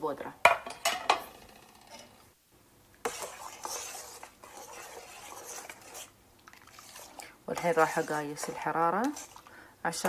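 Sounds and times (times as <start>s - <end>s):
spoon stirring thick mixture in pot: 3.0s - 10.0s.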